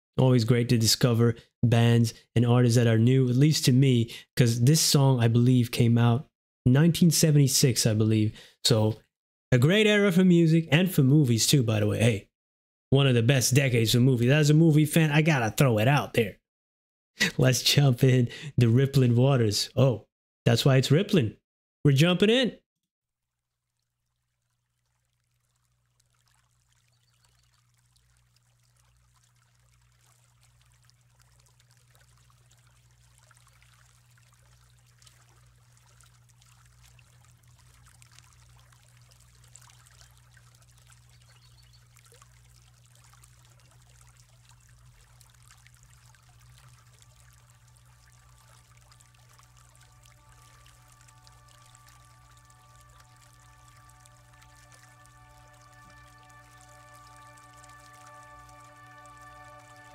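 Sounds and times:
rippling trickling water: 23.2 - 59.9
sustained instrument notes: 48.2 - 59.9.

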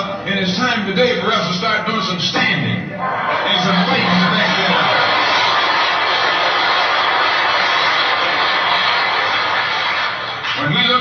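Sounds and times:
audience applauding: 3.2 - 11.0.

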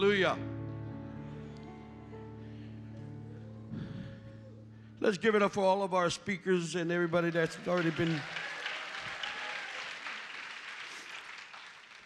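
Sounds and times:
congregation applauding: 6.4 - 12.0.

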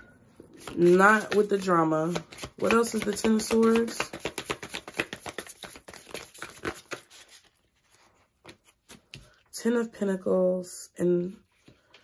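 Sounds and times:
deck of cards being shuffled: 0.6 - 9.2.

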